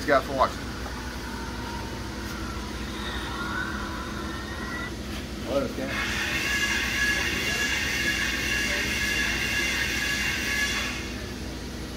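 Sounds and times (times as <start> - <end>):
faint machine whine: 0.0 - 11.9
low machine hum: 0.0 - 11.9.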